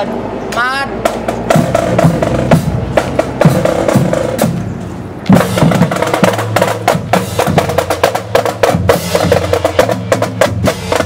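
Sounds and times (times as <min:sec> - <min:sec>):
marching drum line: 0:00.5 - 0:11.0.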